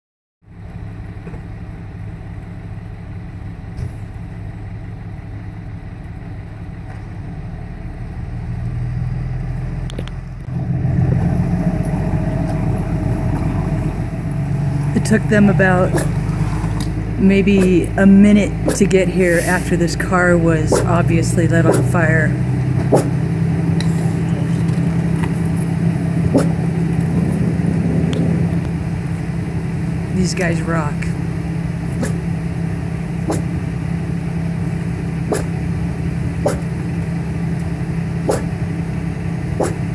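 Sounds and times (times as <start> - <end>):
vehicle engine droning: 0.4 - 39.9.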